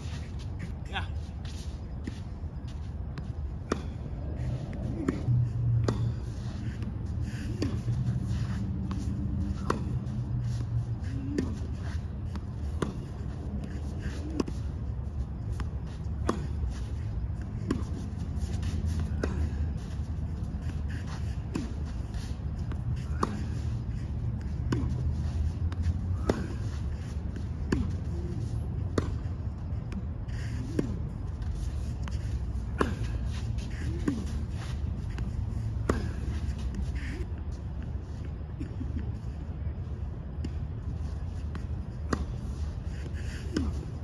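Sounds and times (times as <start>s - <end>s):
shoes shuffling on court: 0.0s - 44.0s
rackets striking tennis ball: 3.1s - 37.0s, 40.3s - 44.0s.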